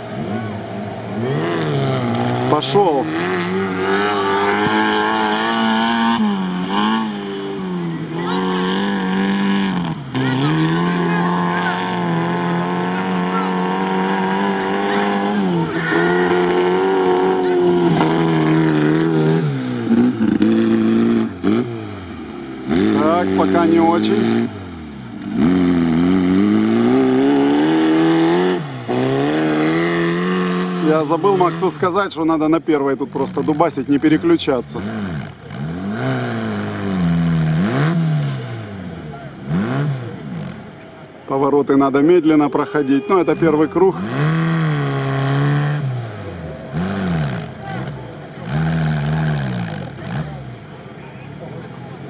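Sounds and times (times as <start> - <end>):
off-road car engine revving: 0.0 - 52.0.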